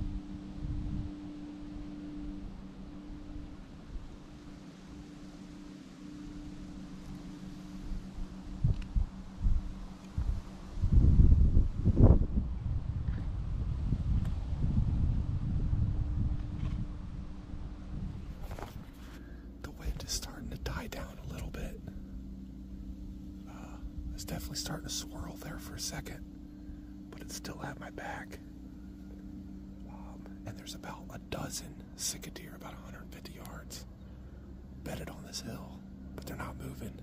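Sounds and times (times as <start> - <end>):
wind buffeting microphone: 0.0 - 1.3, 7.9 - 19.0.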